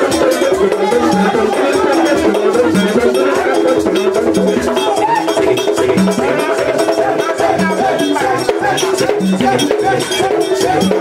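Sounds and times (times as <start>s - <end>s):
man singing through microphone: 0.0s - 11.0s
steady percussion: 0.0s - 11.0s.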